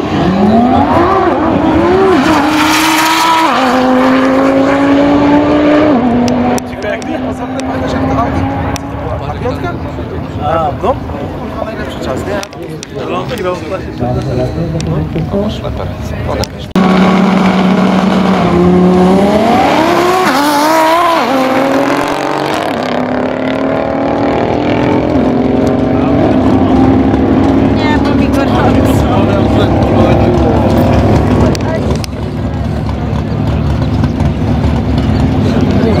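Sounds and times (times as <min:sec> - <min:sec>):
race car engine accelerating: 0:00.0 - 0:11.8, 0:14.7 - 0:36.0.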